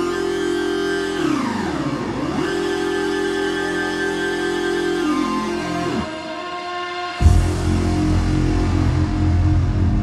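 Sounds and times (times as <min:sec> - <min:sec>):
live electronic dance music: 0:00.0 - 0:10.0.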